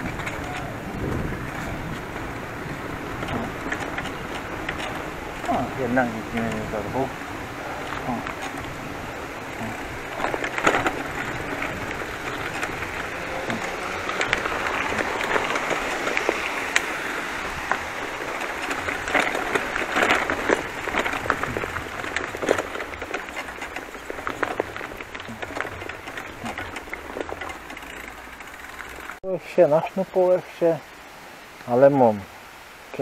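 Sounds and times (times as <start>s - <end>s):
bicycle tyres crackling over leaves: 0.0s - 32.2s.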